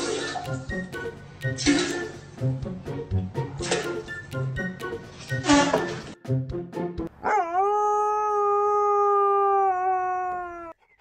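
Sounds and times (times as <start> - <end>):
dog howling: 7.2 - 10.8.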